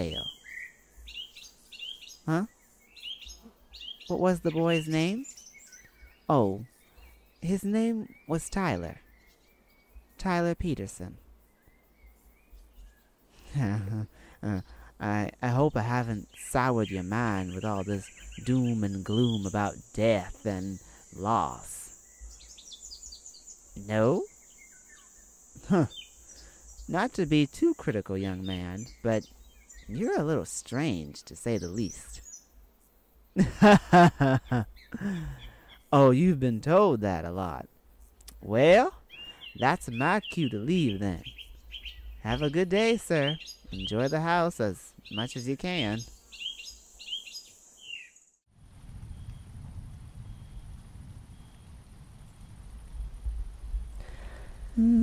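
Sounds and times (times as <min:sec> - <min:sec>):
high bird chirps: 0:00.0 - 0:10.1, 0:16.1 - 0:30.2, 0:39.1 - 0:44.4, 0:45.0 - 0:48.3
low rumbling night ambience: 0:00.0 - 0:46.5, 0:48.5 - 0:55.0
steady high hiss: 0:00.0 - 0:48.2
cricket trill: 0:00.0 - 0:48.4.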